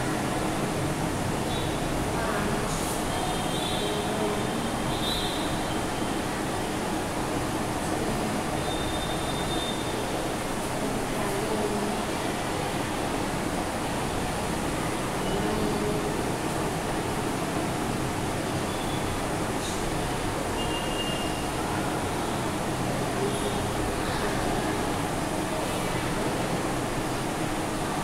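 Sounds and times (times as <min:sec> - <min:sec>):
background hum and hiss: 0:00.0 - 0:28.0.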